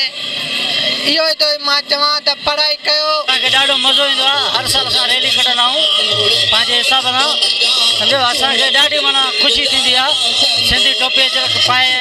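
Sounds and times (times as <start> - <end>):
street noise: 0.0 - 12.0
man speaking into microphone: 1.8 - 12.0.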